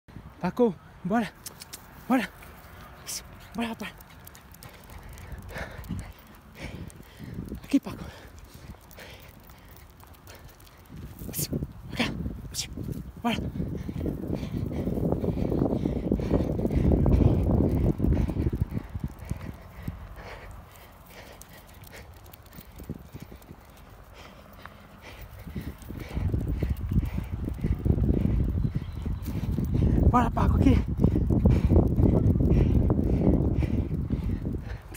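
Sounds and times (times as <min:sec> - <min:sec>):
footsteps on asphalt: 0:01.2 - 0:34.9
low rumble on microphone: 0:04.6 - 0:24.3, 0:25.0 - 0:34.9.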